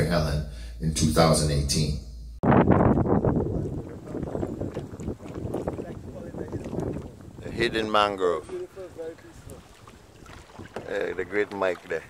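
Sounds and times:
wind buffeting microphone: 2.4s - 12.0s.

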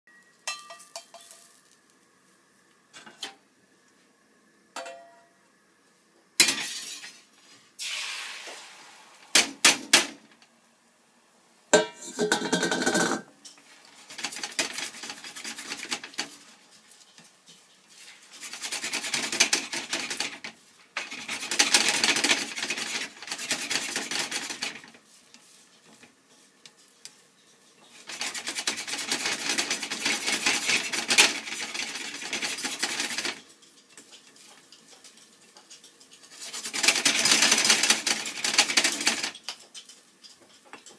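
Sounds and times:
chopsticks clinking on steel bowl: 0.2s - 1.5s
egg sizzling in frying pan: 6.7s - 9.8s
utensil scraping eggs in pan: 12.0s - 40.9s.

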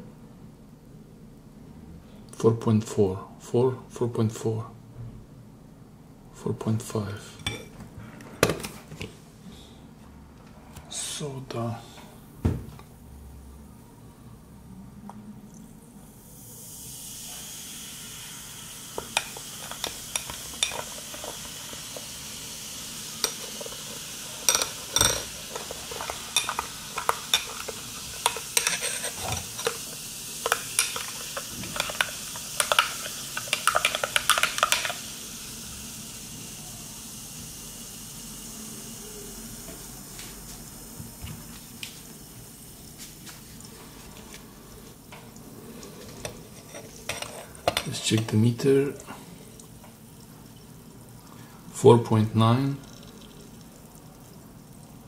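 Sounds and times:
fizzing liquid: 16.1s - 55.0s.

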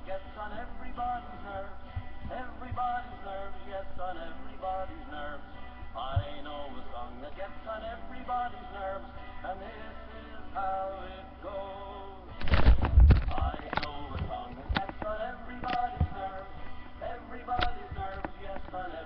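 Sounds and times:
person singing: 0.0s - 19.0s.

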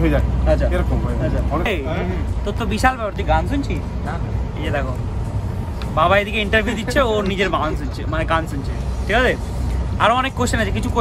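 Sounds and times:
men's voices: 0.0s - 11.0s
train carriage rumble: 0.0s - 11.0s.

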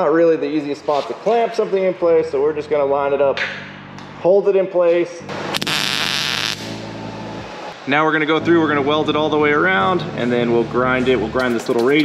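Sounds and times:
welding arc hissing and crackling: 5.5s - 6.8s.

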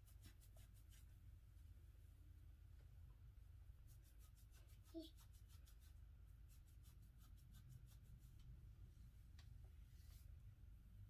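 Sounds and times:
fingertips scratching scalp: 0.0s - 1.2s, 3.8s - 8.5s
low steady hum: 0.0s - 11.0s.

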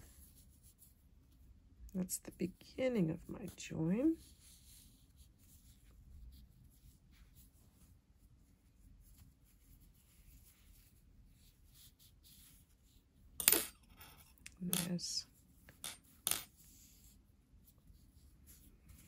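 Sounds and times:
yarn rubbing and rustling: 0.0s - 13.4s, 14.1s - 19.0s.

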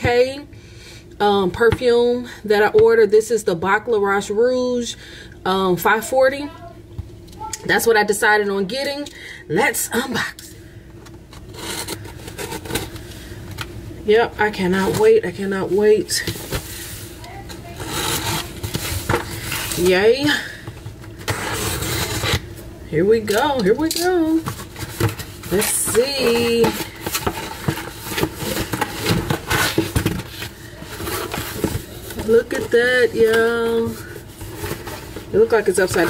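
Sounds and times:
tool scraping packing tape: 11.4s - 13.0s, 17.7s - 19.8s, 21.3s - 22.4s
cardboard box rustling and scraping: 24.3s - 36.0s.

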